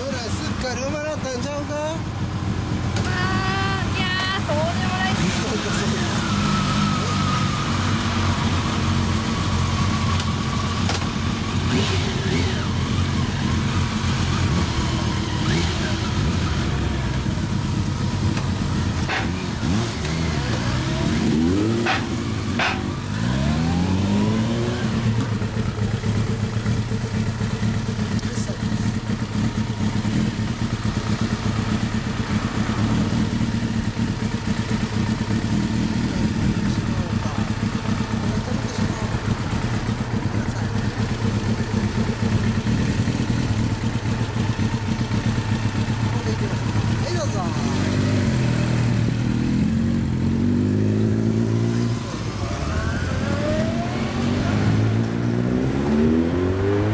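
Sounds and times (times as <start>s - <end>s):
motorcycle engines idling and revving: 0.0s - 56.9s.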